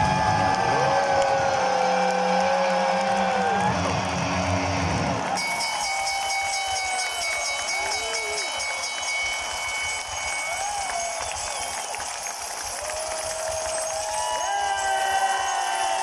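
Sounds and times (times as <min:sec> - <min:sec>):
crowd cheering: 0:00.0 - 0:16.0.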